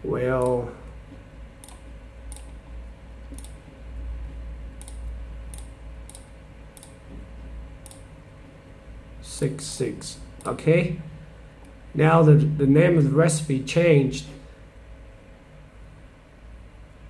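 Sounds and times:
faint low hum: 0:00.0 - 0:17.0
computer mouse clicks: 0:01.6 - 0:02.6, 0:03.3 - 0:03.6, 0:04.8 - 0:07.0, 0:07.8 - 0:08.1.

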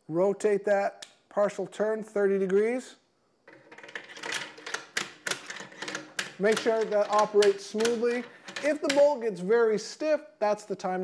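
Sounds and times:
rifle bolt clicking and sliding: 0:03.8 - 0:09.0.

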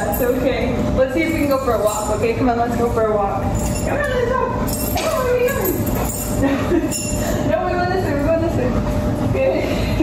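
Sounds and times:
woman speaking: 0:00.0 - 0:06.1, 0:07.4 - 0:09.9
low room rumble: 0:00.0 - 0:10.0.

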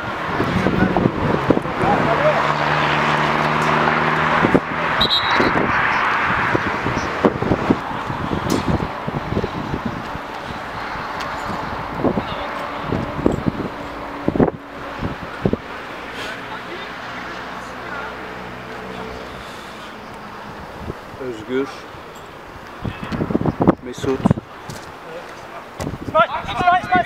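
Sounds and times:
players shouting: 0:00.0 - 0:07.2
wind on microphone: 0:00.0 - 0:15.9, 0:20.3 - 0:21.2, 0:21.9 - 0:25.0, 0:25.7 - 0:27.0
engine hum: 0:00.0 - 0:22.6.

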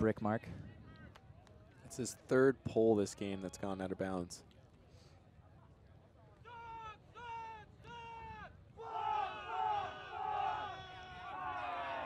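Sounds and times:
players shouting calls: 0:06.3 - 0:12.0
voices calling out together: 0:06.5 - 0:12.0.

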